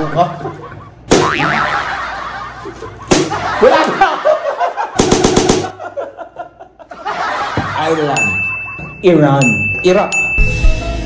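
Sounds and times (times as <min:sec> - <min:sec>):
people laughing: 0:00.0 - 0:09.1.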